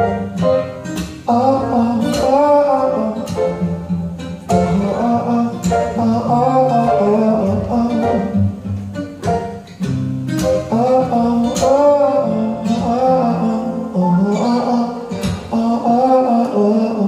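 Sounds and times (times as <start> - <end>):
electric bass: 0.0 - 15.5
strummed acoustic guitar: 0.0 - 17.0
upright piano: 0.0 - 17.0
man singing: 1.3 - 3.6, 4.5 - 8.5, 10.5 - 17.0.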